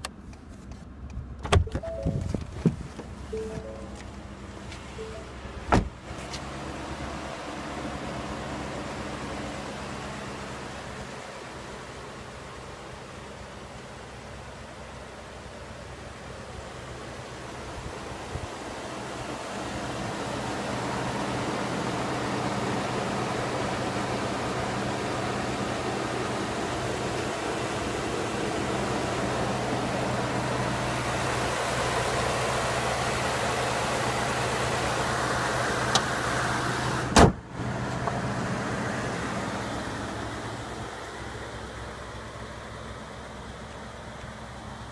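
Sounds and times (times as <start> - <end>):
truck engine idling: 0.9 - 44.9.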